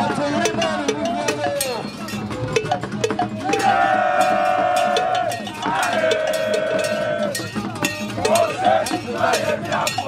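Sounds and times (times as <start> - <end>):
metal bell strikes: 0.4 - 10.0.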